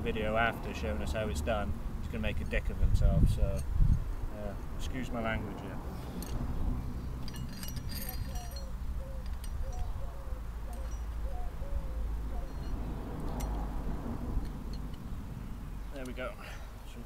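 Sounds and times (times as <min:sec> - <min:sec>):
metal parts clicking and knocking: 0:07.2 - 0:09.8.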